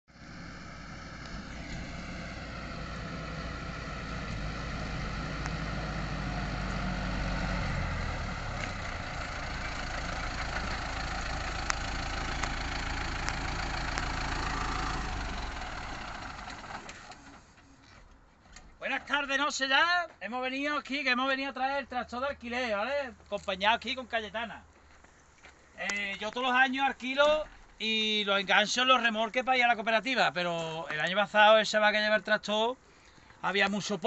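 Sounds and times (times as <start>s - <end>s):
tractor diesel engine running: 0.1s - 17.7s.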